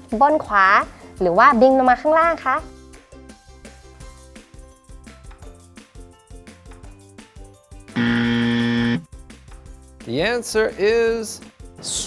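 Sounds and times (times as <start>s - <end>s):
quiet background music: 0.0s - 12.0s
wrong-answer buzzer: 8.0s - 9.1s.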